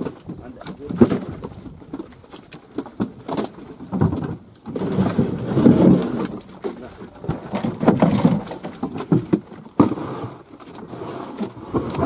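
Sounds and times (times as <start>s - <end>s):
fish flapping and slapping: 0.0s - 12.0s.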